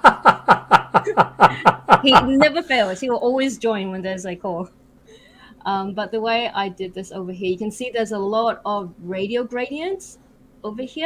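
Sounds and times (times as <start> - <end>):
person laughing: 0.0 - 3.0.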